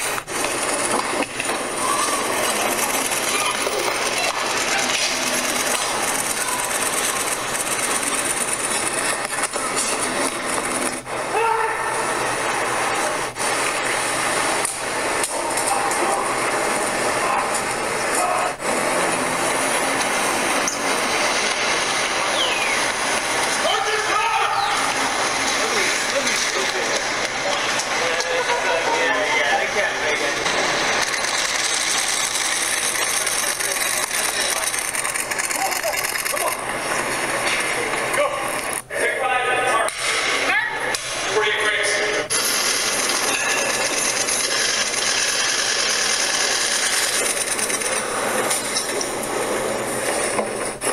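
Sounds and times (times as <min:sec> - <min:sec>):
indistinct voices: 0:00.0 - 0:50.9
street noise: 0:00.0 - 0:50.9.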